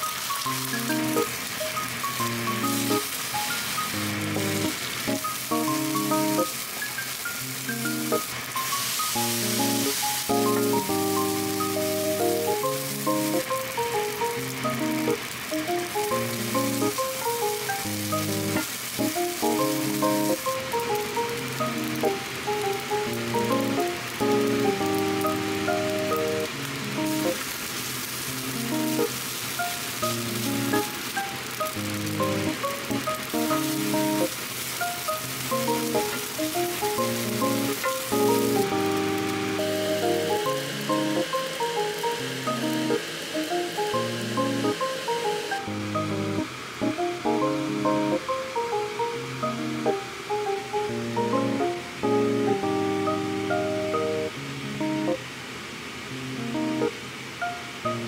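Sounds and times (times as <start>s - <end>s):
food sizzling in a frying pan: 0.0s - 58.0s
background music: 0.6s - 6.5s, 7.6s - 27.4s, 30.0s - 34.3s, 35.2s - 55.2s.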